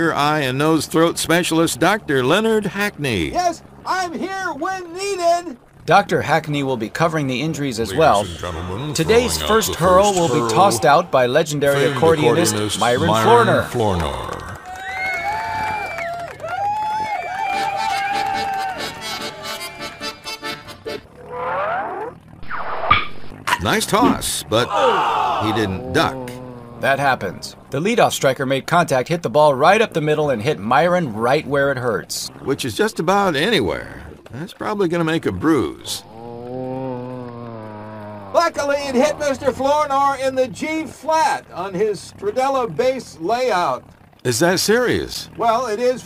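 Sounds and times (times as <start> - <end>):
accordion music: 7.9 - 11.0, 11.6 - 14.7, 17.5 - 21.1.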